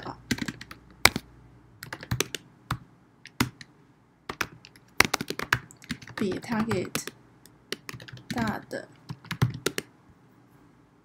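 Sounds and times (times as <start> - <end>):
typing on computer keyboard: 0.3 - 1.2, 1.8 - 3.7, 4.3 - 9.9.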